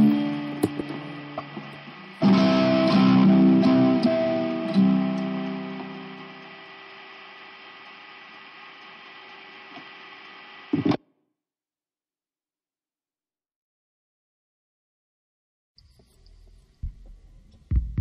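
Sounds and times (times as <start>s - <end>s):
guitar chords ringing: 0.0s - 7.0s
amplifier hum and hiss: 0.0s - 11.0s, 15.8s - 18.0s.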